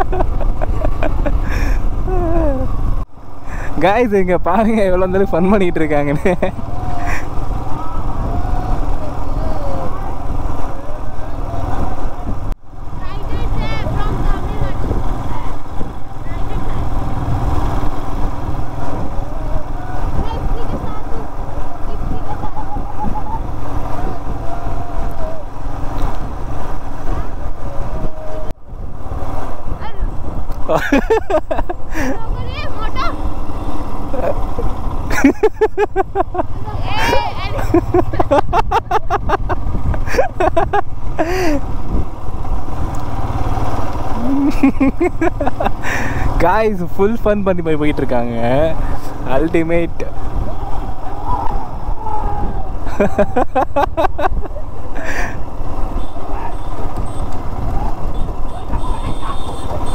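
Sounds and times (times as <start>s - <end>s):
motorcycle engine running: 4.4s - 27.9s, 29.4s - 59.9s
wind noise on microphone: 6.2s - 30.8s, 35.0s - 46.4s, 48.8s - 59.9s
faint voices: 6.5s - 17.0s, 18.8s - 25.8s.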